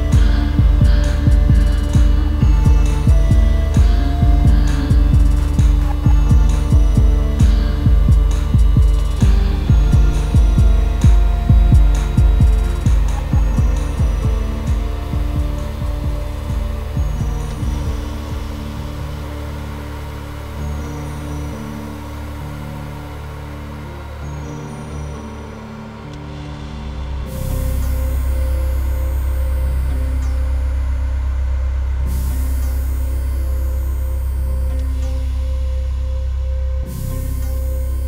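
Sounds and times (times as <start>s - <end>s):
held synth chords: 0.0s - 38.0s
loud low bass drone: 0.0s - 38.0s
low pulsing electronic beat: 0.0s - 38.0s.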